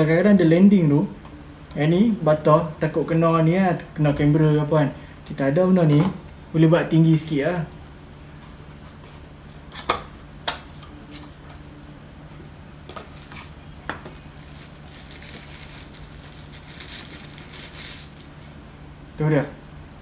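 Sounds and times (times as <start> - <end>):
foam wrapping rustling: 13.1 - 18.6.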